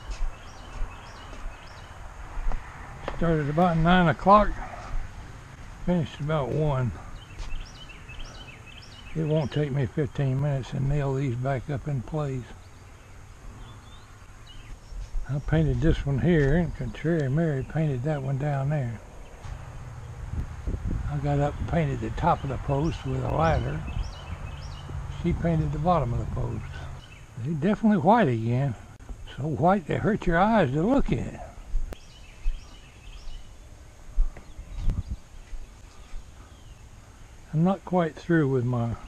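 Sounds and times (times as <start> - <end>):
wind buffeting microphone: 0.0 - 9.6, 13.5 - 27.4, 30.9 - 36.8
faint bird chirps: 6.9 - 9.7, 31.5 - 37.6.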